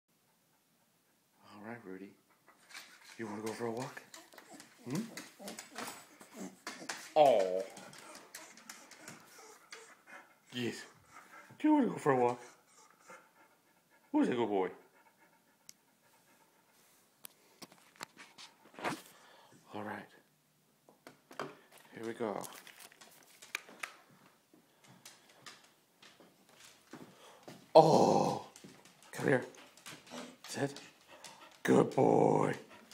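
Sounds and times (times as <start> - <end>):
dog claws clicking on wooden floor: 2.6 - 10.0, 21.0 - 27.7, 28.4 - 32.9.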